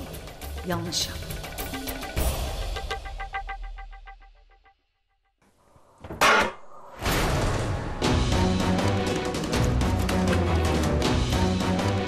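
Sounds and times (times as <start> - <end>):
rhythmic background music: 0.0 - 4.7, 8.0 - 12.0
dramatic theme music: 6.9 - 12.0.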